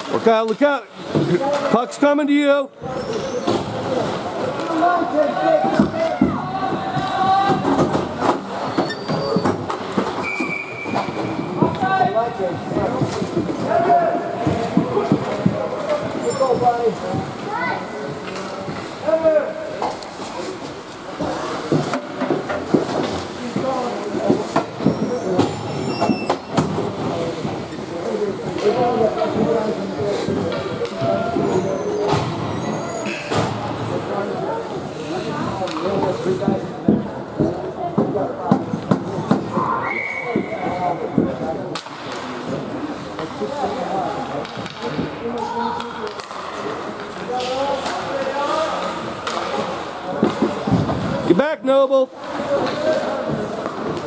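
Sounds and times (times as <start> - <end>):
hockey sticks and pucks clacking: 0.0 - 2.0, 2.8 - 54.0.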